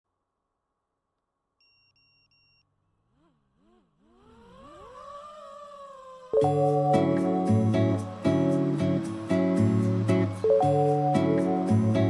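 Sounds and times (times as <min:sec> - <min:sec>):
drone motors whining: 0:03.1 - 0:06.8.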